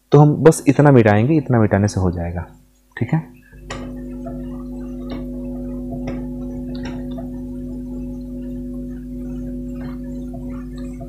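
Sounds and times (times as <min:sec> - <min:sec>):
hum of held tones: 0:02.4 - 0:11.0.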